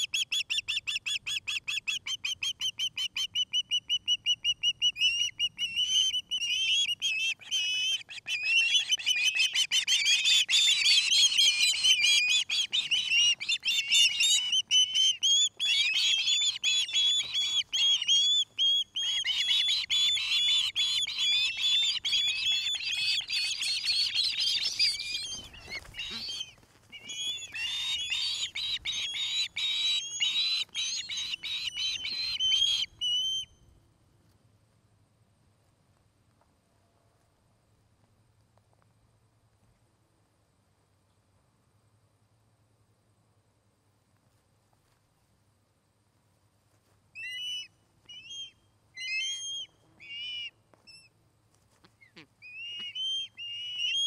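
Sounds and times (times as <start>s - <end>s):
juvenile ospreys chirping: 0.2s - 33.4s.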